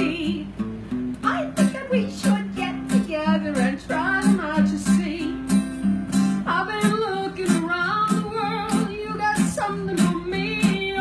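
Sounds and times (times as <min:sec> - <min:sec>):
woman singing with vibrato: 0:00.0 - 0:00.6, 0:01.2 - 0:05.7, 0:06.3 - 0:11.0
acoustic guitar strumming: 0:00.0 - 0:11.0.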